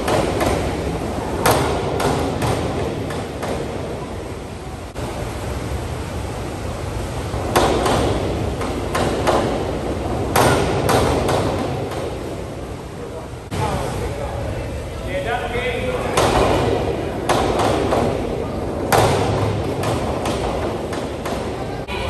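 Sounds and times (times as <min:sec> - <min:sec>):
diving board banging: 0:00.0 - 0:04.5, 0:07.2 - 0:12.7, 0:15.8 - 0:21.8.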